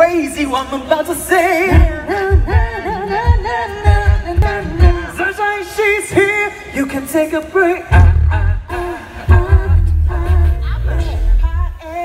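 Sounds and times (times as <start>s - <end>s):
vocal group singing in harmony: 0.2s - 12.0s
beatboxed kick-drum beats: 1.5s - 12.0s.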